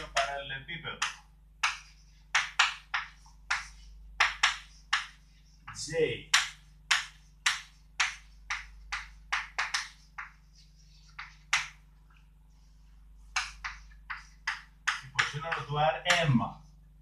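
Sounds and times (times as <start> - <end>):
chalk tapping and scratching on board: 1.0 - 16.9.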